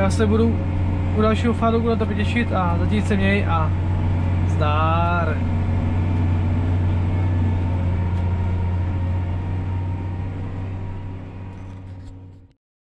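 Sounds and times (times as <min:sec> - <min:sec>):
tractor diesel engine droning: 0:00.0 - 0:12.6.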